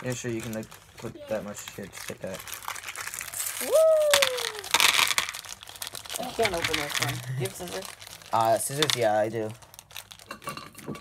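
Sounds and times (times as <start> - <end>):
plastic wrappers crinkling: 0.0 - 11.0
person shouting woo: 3.4 - 4.8.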